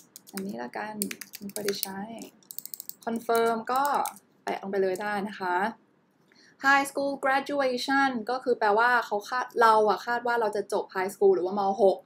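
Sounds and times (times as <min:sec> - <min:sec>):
computer keyboard typing: 0:00.0 - 0:04.2.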